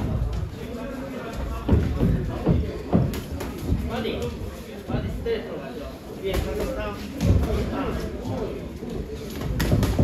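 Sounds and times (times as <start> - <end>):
footwork on ring canvas: 0.0 - 5.3, 6.2 - 10.0.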